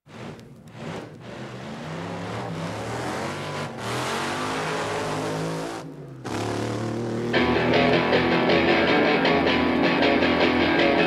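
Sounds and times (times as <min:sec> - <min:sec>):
car engine revving: 0:00.1 - 0:09.0.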